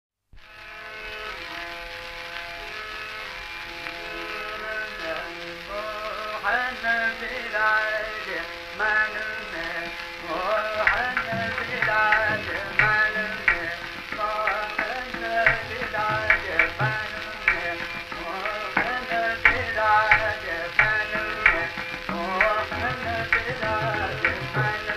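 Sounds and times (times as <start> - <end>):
old classical music recording: 0.4 - 24.9
man singing: 4.4 - 24.9.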